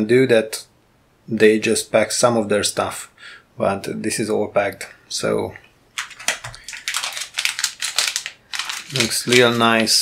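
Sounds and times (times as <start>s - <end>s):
plastic bag crinkling: 5.9s - 10.0s.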